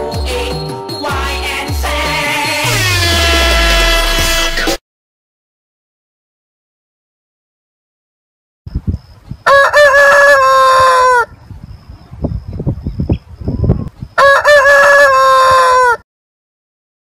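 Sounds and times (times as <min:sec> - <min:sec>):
rooster crowing: 0:09.4 - 0:11.3, 0:14.2 - 0:16.0.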